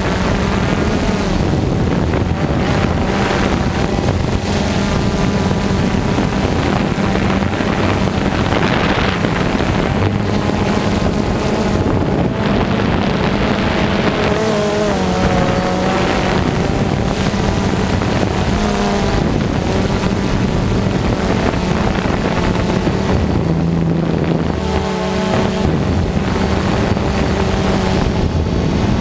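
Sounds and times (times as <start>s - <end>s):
drone motors humming: 0.0s - 29.0s
wind noise on microphone: 0.0s - 29.0s.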